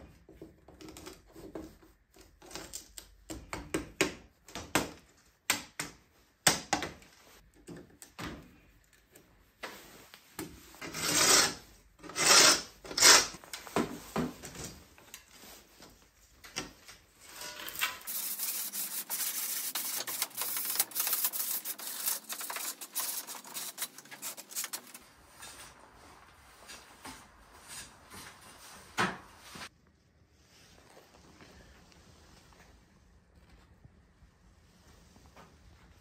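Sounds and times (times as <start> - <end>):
fast rubbing on wood: 18.1 - 25.0.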